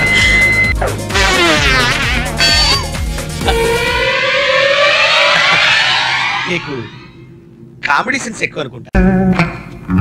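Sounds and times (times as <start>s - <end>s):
siren-like rising tone: 2.4s - 7.4s.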